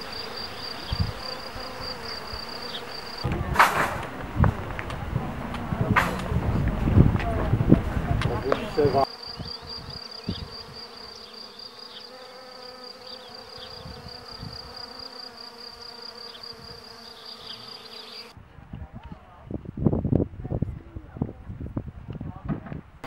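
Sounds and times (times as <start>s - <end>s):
insects chirring: 0.0s - 18.3s
low insect hum: 0.0s - 18.4s.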